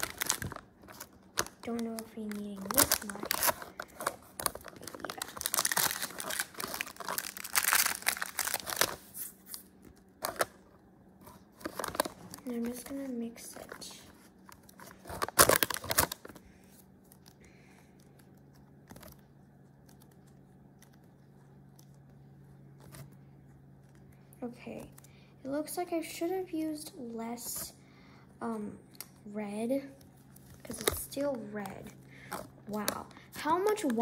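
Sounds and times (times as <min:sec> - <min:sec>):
foil wrapper crinkling and tearing: 0:00.0 - 0:10.6, 0:11.4 - 0:21.0
low steady hum: 0:00.0 - 0:34.0.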